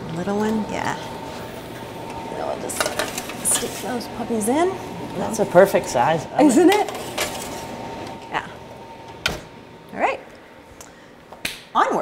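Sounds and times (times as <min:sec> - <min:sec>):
oven door shutting with a thump: 0:09.2 - 0:09.5.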